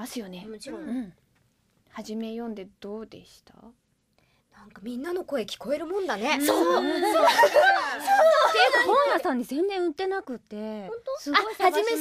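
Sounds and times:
woman talking: 4.6 - 12.0.

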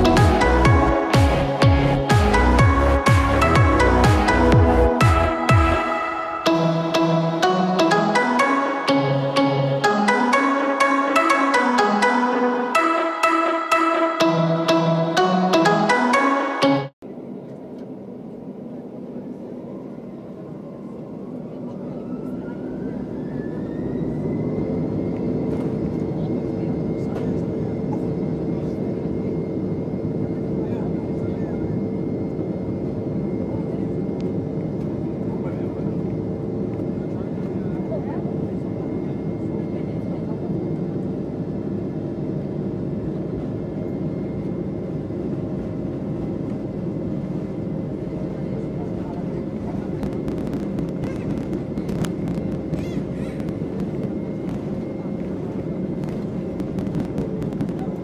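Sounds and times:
jet engines roaring from cabin: 17.0 - 58.0.

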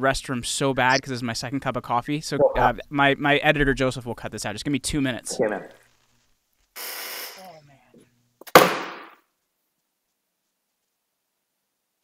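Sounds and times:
sharp loud knock: 8.4 - 9.2.

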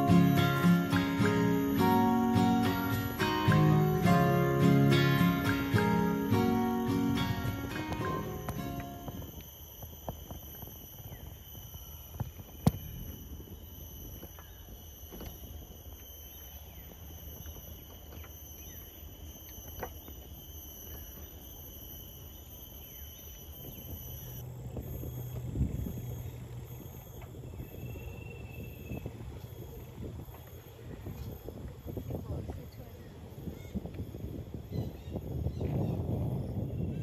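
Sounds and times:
high-pitched insect chorus: 0.0 - 37.0.

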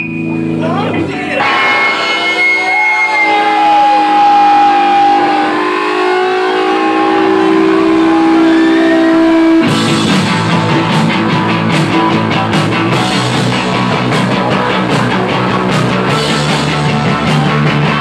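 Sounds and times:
electric guitar ringing notes: 0.0 - 18.0
rock band playing loud: 0.0 - 18.0.

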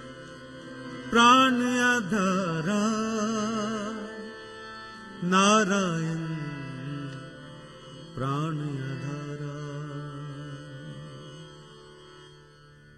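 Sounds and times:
harmonium drone: 0.0 - 12.9
man singing: 1.1 - 4.3, 5.2 - 7.3, 8.0 - 11.6.

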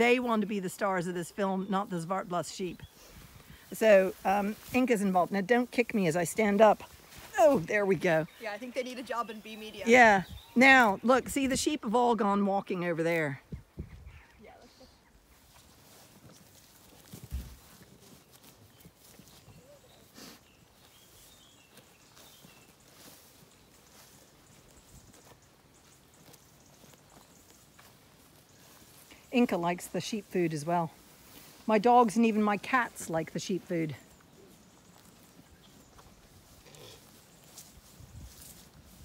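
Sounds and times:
grass crunch: 0.0 - 13.4, 14.5 - 39.0.

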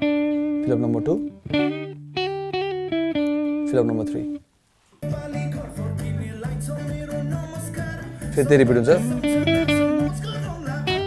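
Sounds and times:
electric guitar lead fill: 0.0 - 4.4, 8.7 - 11.0
held low guitar note: 9.0 - 10.2.

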